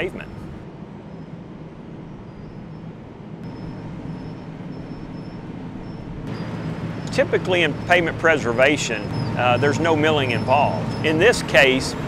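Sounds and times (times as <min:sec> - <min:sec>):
milling machine low engine drone: 0:00.0 - 0:12.0.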